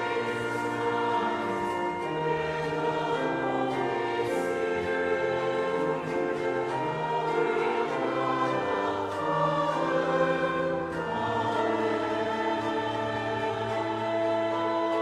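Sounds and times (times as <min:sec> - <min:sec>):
congregation singing a hymn: 0:00.0 - 0:15.0
sustained instrumental accompaniment: 0:00.0 - 0:15.0.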